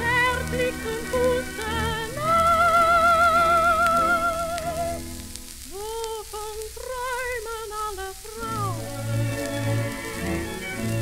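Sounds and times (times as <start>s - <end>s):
orchestral tango music: 0.0s - 5.9s, 7.1s - 11.0s
record surface crackle: 0.0s - 11.0s.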